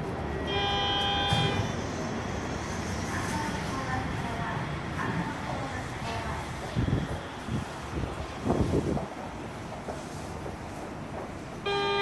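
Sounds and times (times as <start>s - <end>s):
train car hum: 0.0s - 12.0s.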